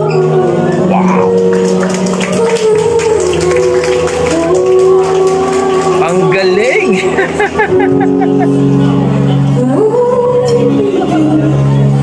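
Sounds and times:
backing track: 0.0s - 12.0s
girl singing into microphone: 2.2s - 6.4s, 9.4s - 12.0s.

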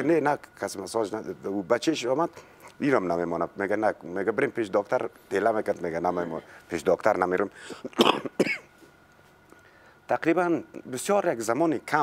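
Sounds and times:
person coughing: 7.7s - 8.7s.

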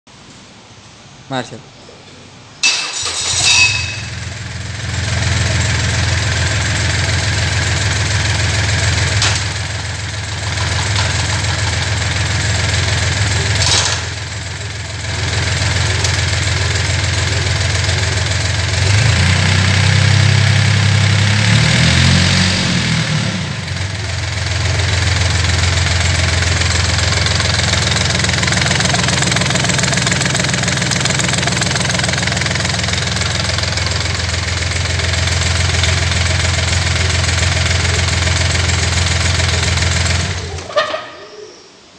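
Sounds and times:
diesel outboard motor running: 4.0s - 40.7s.

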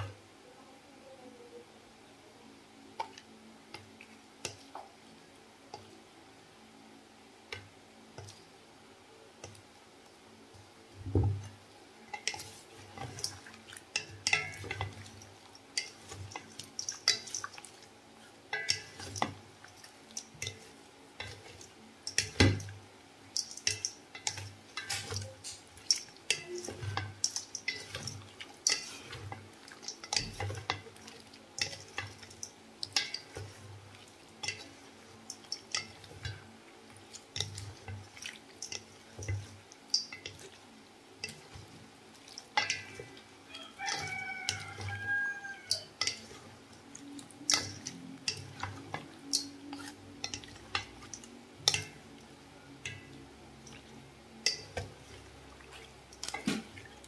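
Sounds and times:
wooden spatulas scraping metal bowl: 23.7s - 32.2s, 42.5s - 46.6s.

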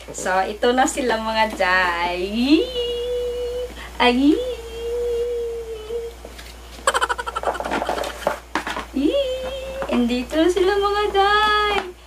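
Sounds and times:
woman giggling: 6.8s - 8.1s
cardboard boxes rustling: 7.3s - 8.9s.

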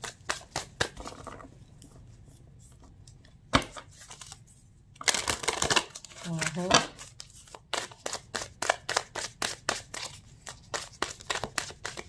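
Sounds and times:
cards shuffled by hand: 5.0s - 12.0s.

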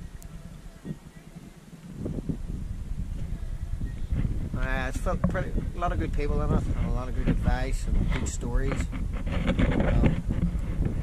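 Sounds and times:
wind buffeting microphone: 0.0s - 11.0s
yacht engine rumble: 0.0s - 11.0s.

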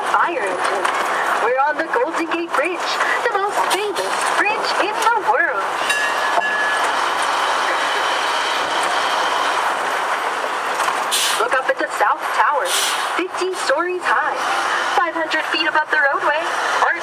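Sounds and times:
road and wind noise: 0.0s - 17.0s.

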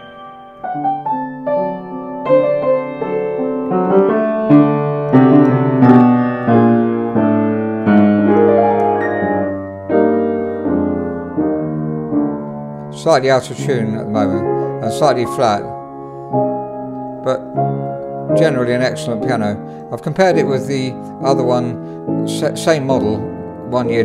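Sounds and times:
upright piano slow chords: 0.0s - 24.0s.

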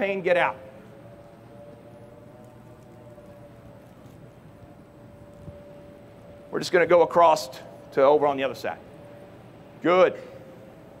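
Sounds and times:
faint whine: 0.0s - 11.0s
low hum: 0.0s - 11.0s.

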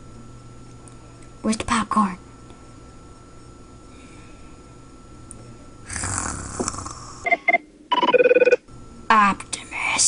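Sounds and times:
ringing tone: 7.3s - 8.6s.

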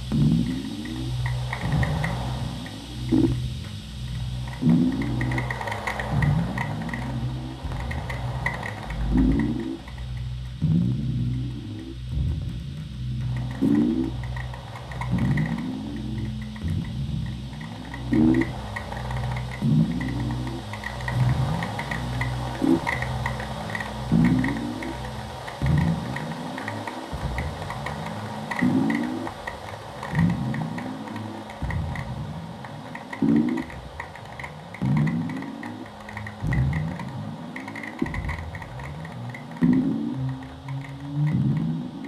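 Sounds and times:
low electronic drone: 0.0s - 42.0s
rapid high clicks: 0.0s - 42.0s.

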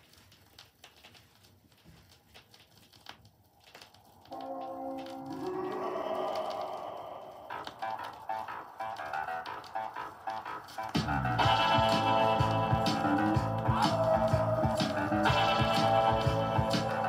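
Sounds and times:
vinyl surface crackle and clicks: 0.0s - 17.0s
song playing from record: 5.2s - 17.0s.

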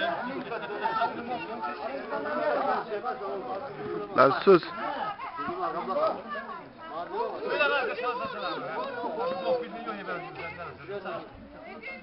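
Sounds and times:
men talking over one another: 0.0s - 12.0s.

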